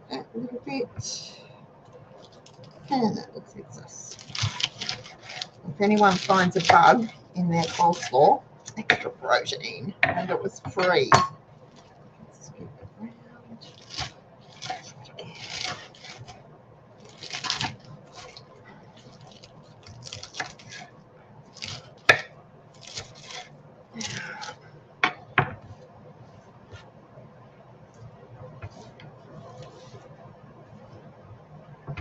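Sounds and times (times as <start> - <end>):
hands pushing shreds together: 4.1 - 8.2, 13.6 - 16.4, 17.0 - 18.4, 19.0 - 20.9
knife chopping cabbage on board: 13.8 - 16.3, 21.6 - 24.5.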